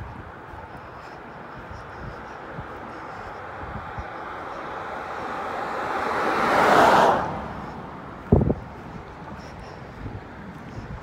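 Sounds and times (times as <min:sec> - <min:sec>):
car passing by: 0:03.4 - 0:09.6.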